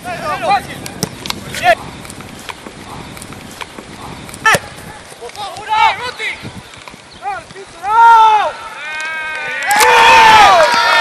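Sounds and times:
outdoor field noise: 0.0s - 11.0s.

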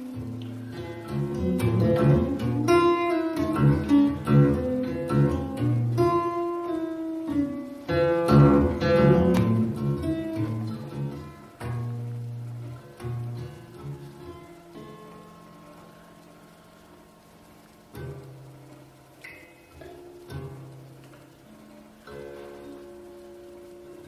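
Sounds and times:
acoustic guitar playing: 0.0s - 24.0s.

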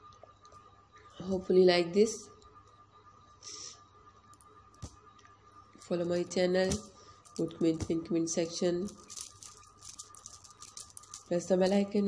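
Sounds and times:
thin steady tone: 0.0s - 12.0s.

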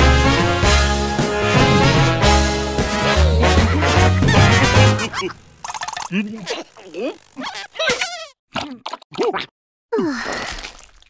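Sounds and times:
buzzy cartoon noises: 2.4s - 9.5s.

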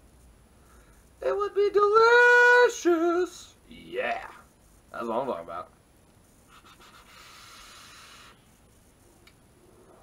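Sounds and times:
e-cigarette airy hiss: 6.4s - 8.6s.

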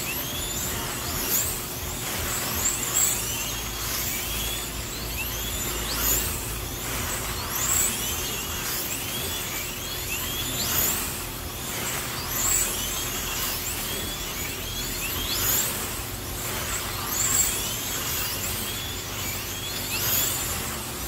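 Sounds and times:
slot car motors whining: 0.0s - 21.0s.

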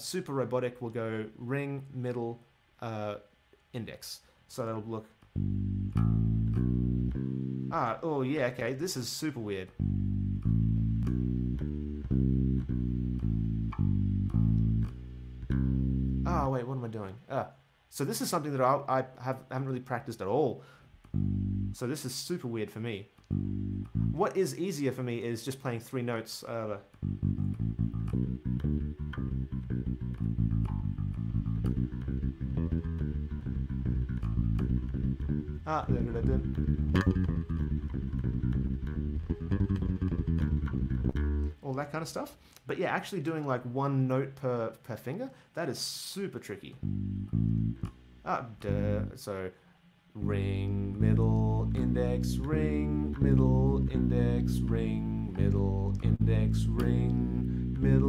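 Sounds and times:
electric bass plucked notes: 5.2s - 8.7s, 9.7s - 16.7s, 21.0s - 21.9s, 23.2s - 24.4s, 26.9s - 41.6s, 46.7s - 49.2s, 50.2s - 58.0s
person vocal ah: 50.2s - 58.0s.

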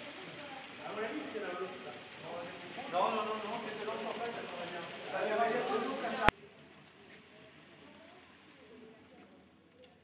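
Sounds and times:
faint distant murmuring voices: 0.0s - 10.0s.

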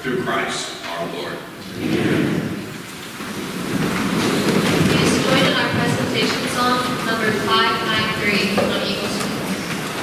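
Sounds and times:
congregation shuffling and rustling: 0.1s - 10.0s.

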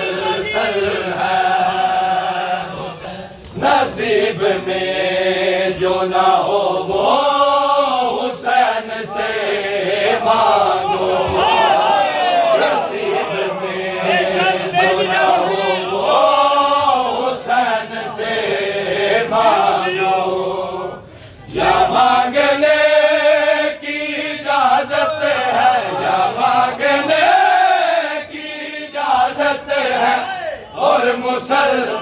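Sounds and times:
men chanting a lament: 0.0s - 32.0s.

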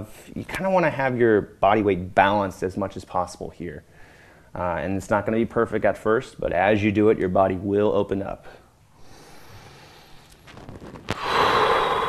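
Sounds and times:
man exhaling: 11.1s - 12.0s.

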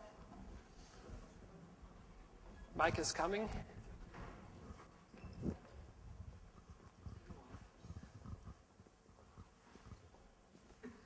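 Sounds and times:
faint hall room noise: 0.0s - 11.0s.

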